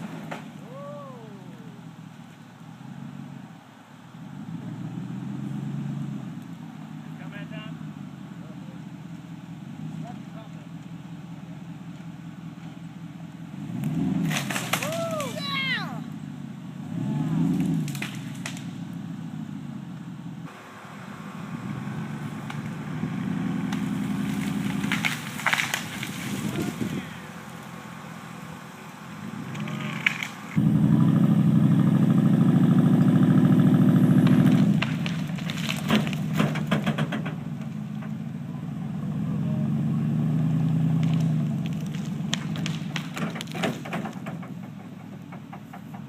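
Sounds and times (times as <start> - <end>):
truck engine revving under load: 0.0 - 46.0
branches cracking: 13.8 - 15.7, 17.4 - 18.8, 21.6 - 30.6, 34.0 - 38.2, 40.6 - 44.4.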